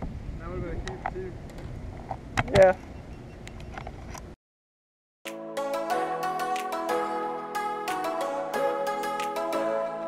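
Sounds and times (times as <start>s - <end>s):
wind: 0.0s - 4.4s.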